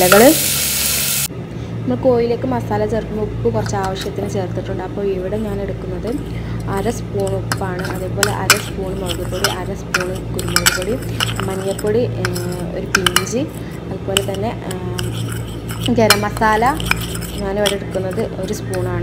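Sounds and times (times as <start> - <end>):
metal spoon scraping ceramic bowl: 3.6 - 4.4, 5.2 - 19.0.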